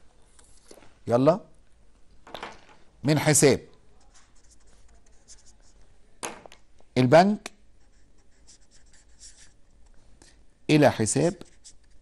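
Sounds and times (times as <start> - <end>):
marker pen scratching on whiteboard: 4.0 - 5.8, 7.8 - 9.6, 11.1 - 12.0.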